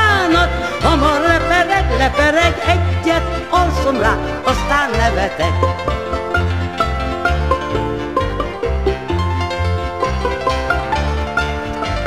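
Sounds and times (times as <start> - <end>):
band music with ornamented melody: 0.0 - 12.0.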